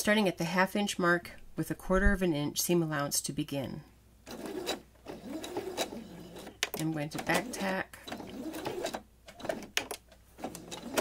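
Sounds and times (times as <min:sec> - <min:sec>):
sewing machine stitching: 0:04.3 - 0:11.0.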